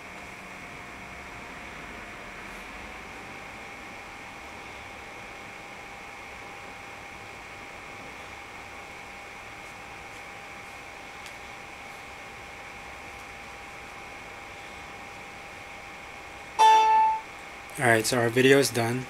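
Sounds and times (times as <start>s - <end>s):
faint steady whine: 0.0s - 19.0s.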